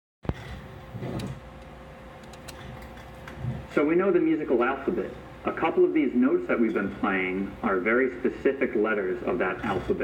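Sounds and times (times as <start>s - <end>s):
faint steady hum: 0.3s - 10.0s.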